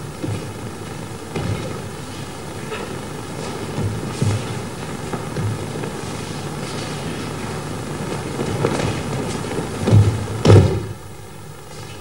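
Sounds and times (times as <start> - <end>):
steady hiss and rumble: 0.0 - 12.0
bodies thudding on a mat: 8.4 - 11.0.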